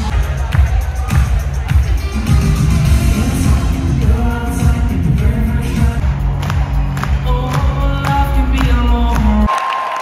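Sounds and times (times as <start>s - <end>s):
live pop music with singing: 0.0s - 9.5s
crowd cheering: 9.1s - 10.0s.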